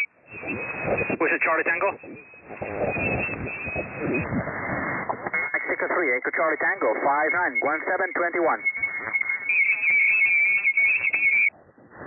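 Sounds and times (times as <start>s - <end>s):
high warbling tone: 0.0s - 4.4s
radio static: 0.0s - 11.5s
faint overlapping radio voices: 0.0s - 11.7s.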